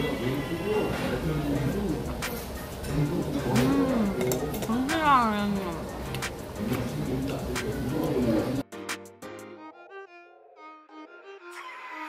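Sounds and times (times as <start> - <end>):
restaurant background noise: 0.0 - 8.9.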